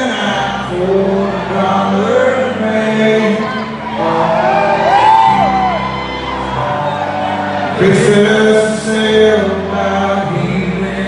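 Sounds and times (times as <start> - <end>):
man singing long notes: 0.0 - 5.8, 6.4 - 11.0
live rock band playing: 0.0 - 11.0.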